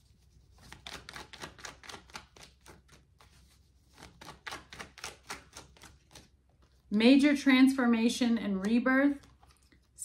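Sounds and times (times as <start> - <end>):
cards being shuffled: 0.5 - 6.9.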